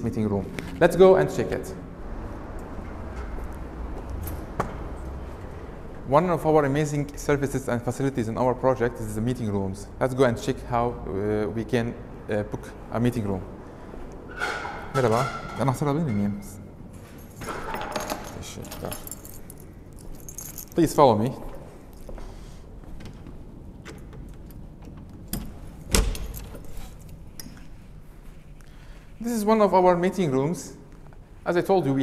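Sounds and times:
keys jangling: 0:17.0 - 0:22.2, 0:23.8 - 0:27.8.

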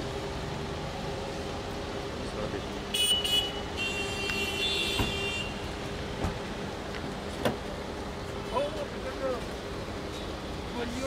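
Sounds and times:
roadside traffic: 0:00.0 - 0:11.0.

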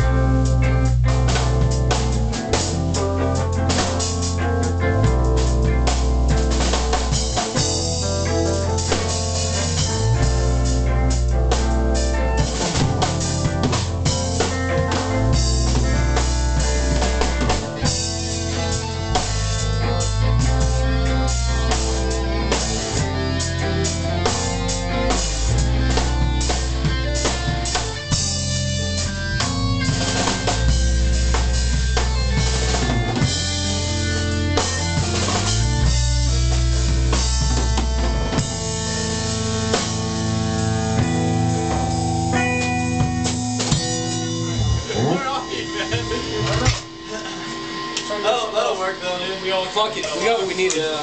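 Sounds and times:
bass line: 0:00.0 - 0:48.7
drum kit: 0:00.0 - 0:51.0
electric guitars: 0:00.0 - 0:51.0
rock band playing live: 0:00.0 - 0:51.0.

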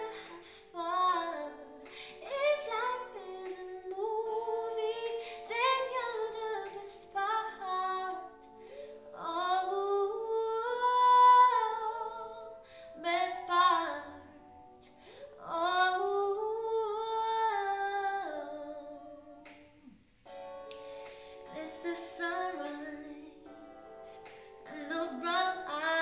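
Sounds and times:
soft held accompaniment chords: 0:00.0 - 0:26.0.

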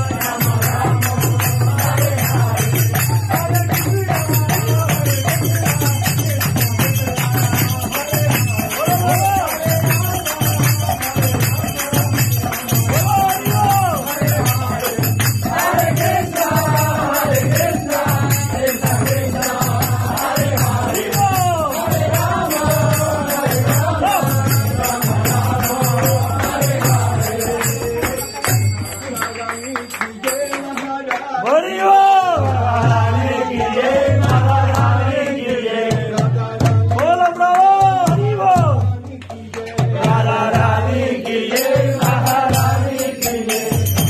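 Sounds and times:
hand drum steady beat: 0:00.0 - 0:29.3, 0:32.4 - 0:44.0
group chanting: 0:00.0 - 0:29.5, 0:30.2 - 0:38.7, 0:39.6 - 0:44.0
small hand cymbals ringing: 0:00.3 - 0:30.9, 0:41.6 - 0:44.0.

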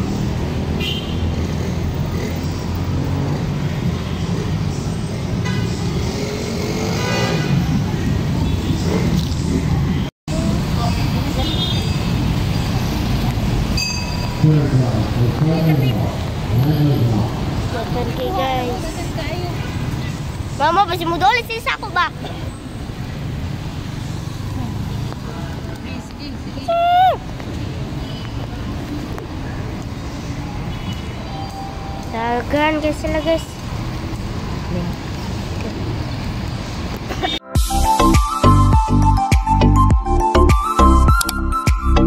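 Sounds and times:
city street traffic rumble: 0:00.0 - 0:42.0.

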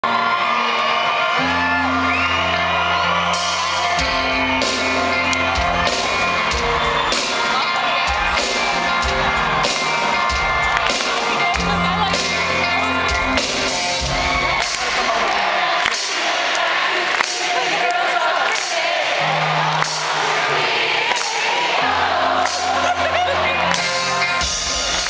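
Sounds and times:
drums and cymbals beat: 0:03.2 - 0:15.2, 0:23.7 - 0:25.0.

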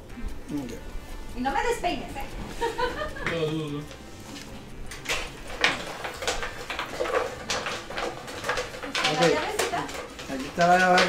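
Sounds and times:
plastic box clacks and knocks: 0:05.1 - 0:11.0.

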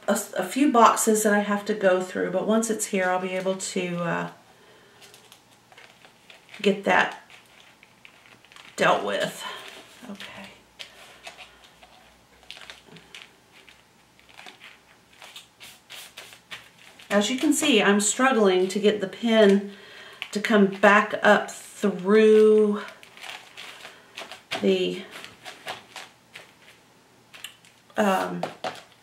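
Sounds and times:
paper crinkling and rustling: 0:05.0 - 0:20.9, 0:21.9 - 0:29.0.

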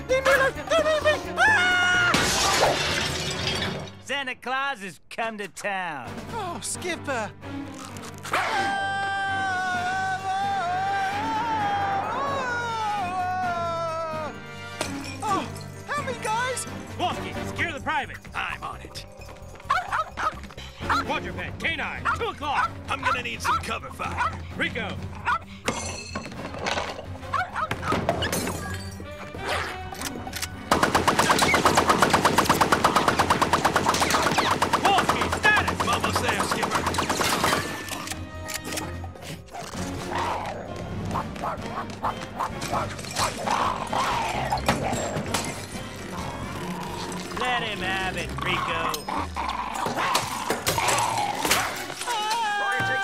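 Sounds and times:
background music: 0:00.0 - 0:53.0.

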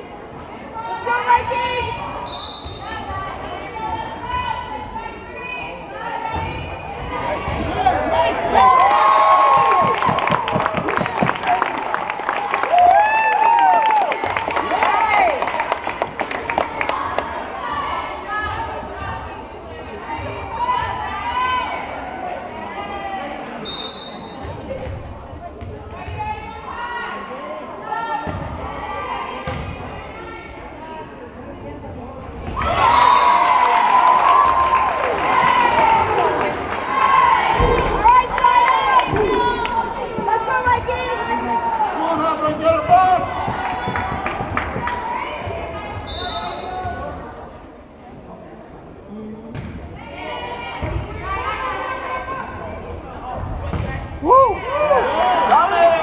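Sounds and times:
people calling out and chattering: 0:00.0 - 0:56.0.

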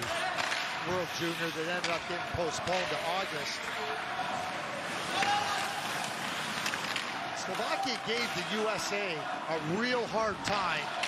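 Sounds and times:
hockey stick and puck clicks: 0:00.0 - 0:01.0, 0:01.6 - 0:03.0, 0:04.9 - 0:08.4
crowd and skating noise: 0:00.0 - 0:11.0.

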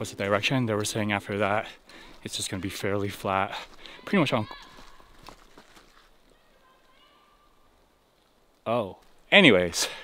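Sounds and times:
footsteps on forest trail: 0:00.0 - 0:10.0.

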